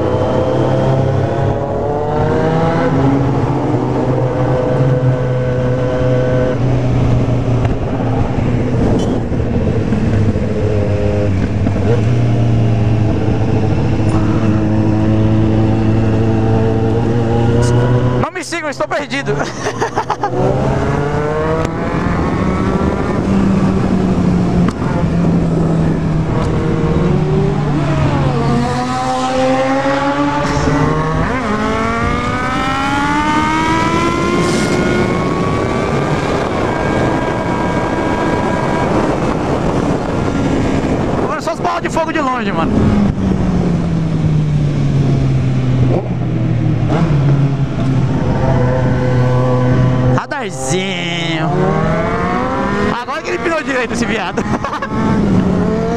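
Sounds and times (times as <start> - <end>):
motorcycle engine accelerating: 0.0 - 55.9.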